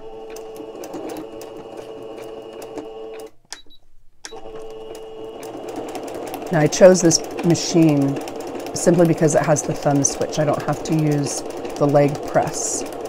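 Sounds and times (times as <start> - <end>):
sewing machine stitching: 0.0 - 3.4, 4.3 - 13.0.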